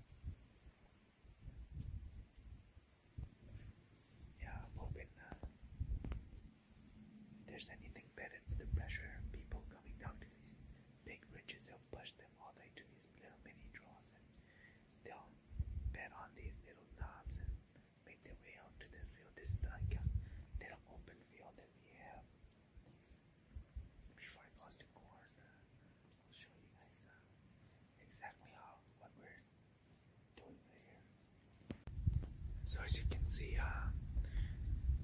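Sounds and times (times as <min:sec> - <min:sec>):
man whispering: 0:04.3 - 0:05.7, 0:07.4 - 0:22.3, 0:24.1 - 0:27.3, 0:28.0 - 0:29.5, 0:30.3 - 0:31.1, 0:32.6 - 0:34.5.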